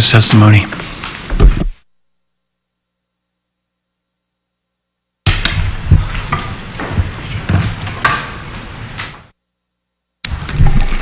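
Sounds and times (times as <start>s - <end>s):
microphone handling rumble: 1.3s - 1.8s
thumps on microphone: 1.3s - 1.8s, 5.3s - 8.2s.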